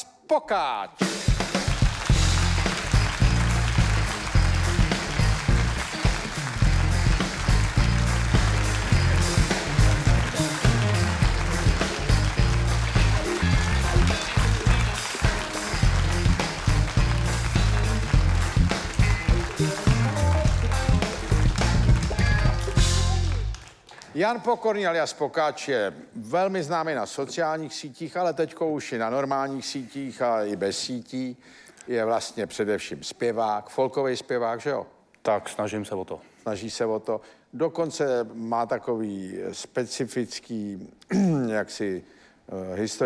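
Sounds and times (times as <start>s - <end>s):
live band playing: 1.0s - 23.7s
pulsing bass line: 2.0s - 23.5s.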